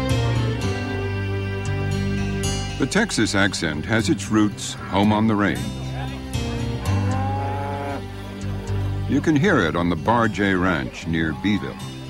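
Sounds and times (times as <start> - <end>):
cow mooing: 6.8 - 8.1.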